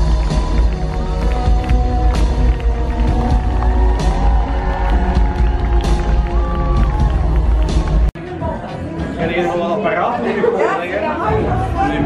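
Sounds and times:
crowd cheering: 0:00.0 - 0:08.2.

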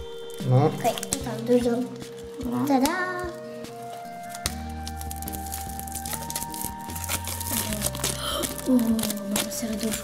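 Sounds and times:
background music with held notes: 0:00.0 - 0:10.0
plastic wrap crinkling: 0:00.0 - 0:10.0.

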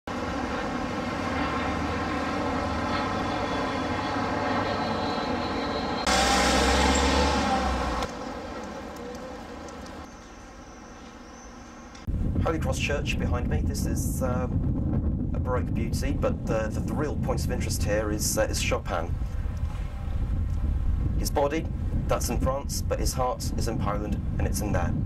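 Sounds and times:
buses running past: 0:00.1 - 0:12.1
city street traffic: 0:00.1 - 0:12.1.

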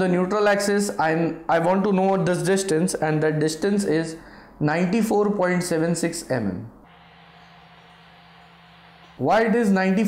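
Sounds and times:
low electrical hum: 0:01.0 - 0:10.0
faint steady hiss: 0:06.7 - 0:09.6.

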